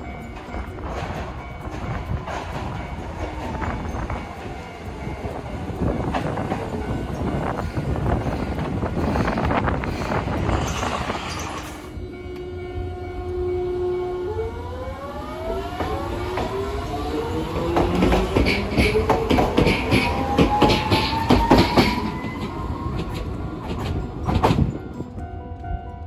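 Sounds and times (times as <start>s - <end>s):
tram motors whining: 0.0s - 25.7s
wheels clacking over rail joints: 17.4s - 25.0s.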